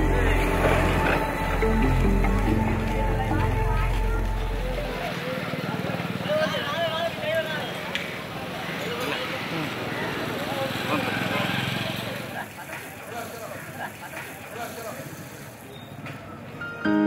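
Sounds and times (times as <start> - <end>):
passing traffic: 0.0 - 16.8
voices in background: 0.0 - 16.9
steady hiss: 12.4 - 15.8.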